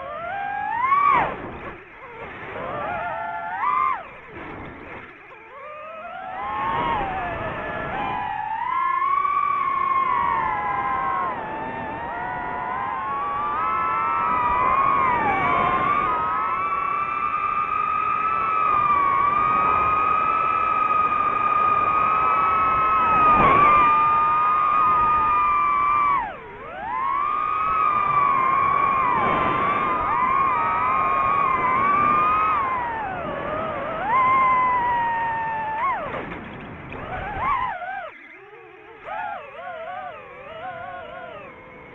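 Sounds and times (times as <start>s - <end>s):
drone motors whining: 0.0s - 41.9s.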